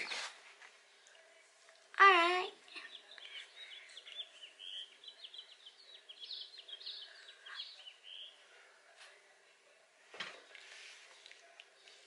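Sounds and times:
small birds chirping: 0.0 - 8.5.

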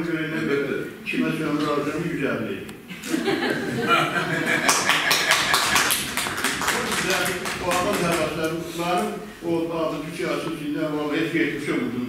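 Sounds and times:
people clapping: 4.2 - 9.1.

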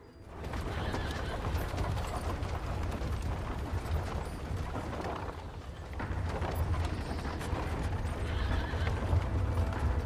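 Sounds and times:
hooves clopping: 0.0 - 10.0
rolling cart rumble: 0.0 - 10.0
horse whinnying: 0.6 - 1.8, 8.2 - 9.1.

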